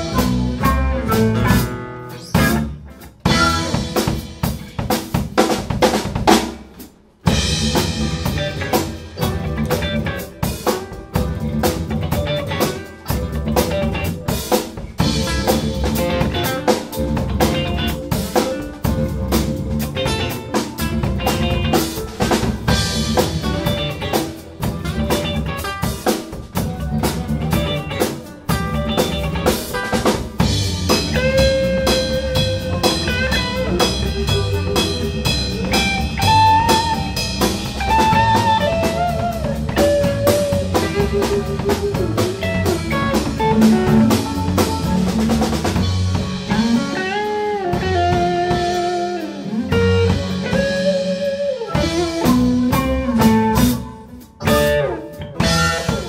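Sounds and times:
flute: 0.0s - 1.7s, 31.4s - 42.9s, 50.5s - 54.2s
electric guitar: 0.0s - 6.4s, 7.2s - 56.0s
electric bass: 0.0s - 6.6s, 7.2s - 56.0s
drum kit: 0.0s - 56.0s.

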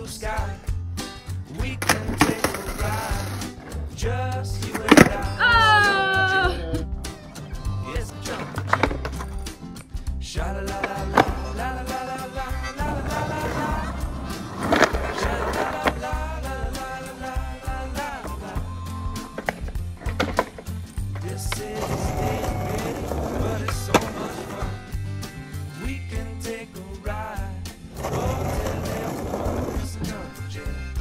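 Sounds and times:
background pop music: 0.0s - 31.0s
skateboard clattering: 1.6s - 3.8s, 4.6s - 5.4s, 8.2s - 9.9s, 10.6s - 24.9s, 27.9s - 30.4s
skateboard wheels rolling on asphalt: 1.6s - 4.0s, 12.8s - 24.9s, 27.9s - 30.3s.

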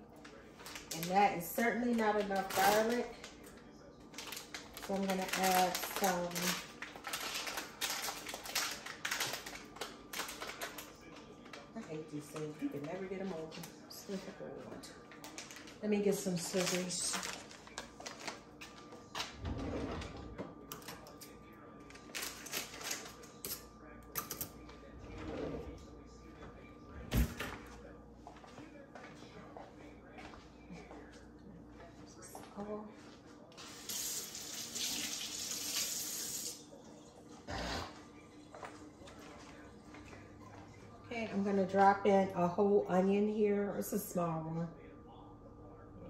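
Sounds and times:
kitchen tap running: 33.7s - 36.6s.

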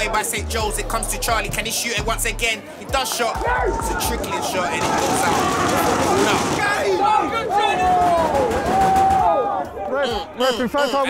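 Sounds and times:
spectators shouting: 3.0s - 10.7s.

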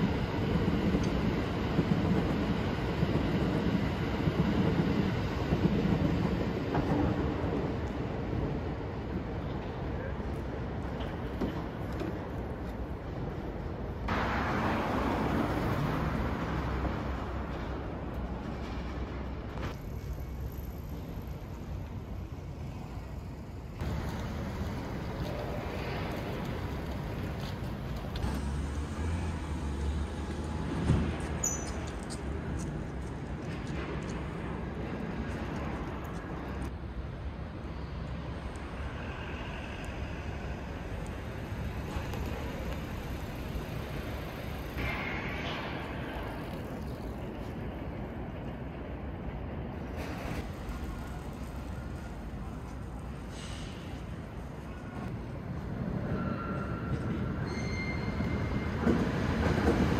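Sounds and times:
distant traffic rumble: 0.0s - 57.4s
wind: 0.0s - 59.9s
car passing: 23.8s - 31.4s.

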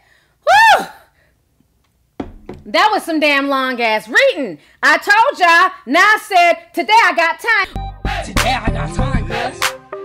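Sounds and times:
woman whooping: 0.4s - 1.1s.

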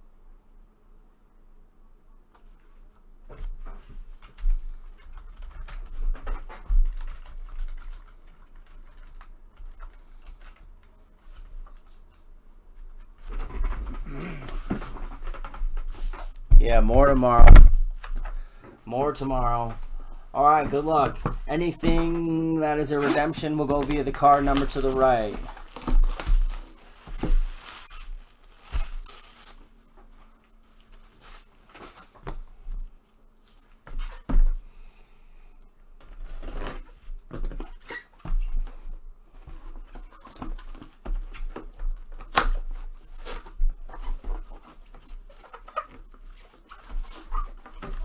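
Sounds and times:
plastic shrink-wrap tearing: 23.0s - 29.7s.

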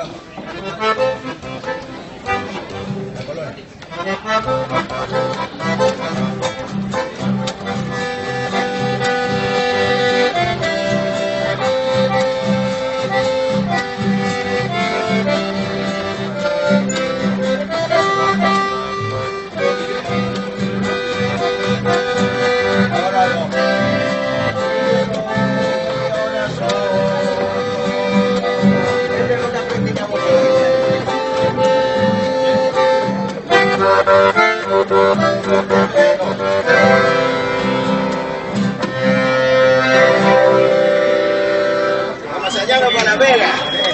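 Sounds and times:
accordion melody: 0.0s - 43.9s
acoustic guitar strumming: 0.0s - 43.9s.

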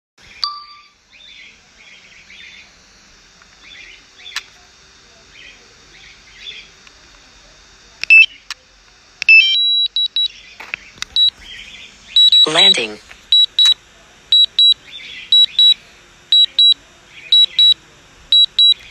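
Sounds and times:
electronic alert beeps: 9.3s - 10.3s, 11.2s - 11.4s, 12.2s - 17.8s, 18.4s - 18.8s.

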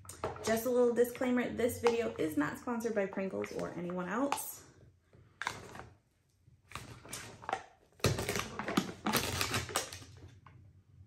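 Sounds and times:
foil seal crinkling: 8.1s - 10.2s.

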